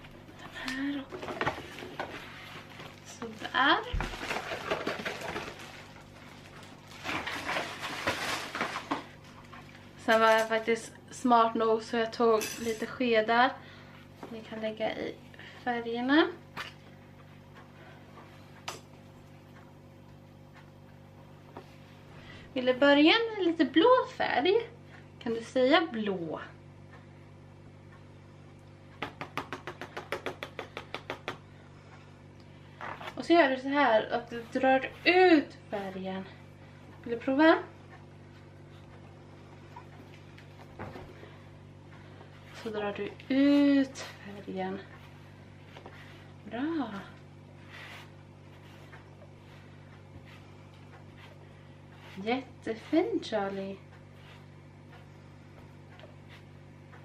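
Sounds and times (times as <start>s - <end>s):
rustling of packaging: 1.1s - 10.7s.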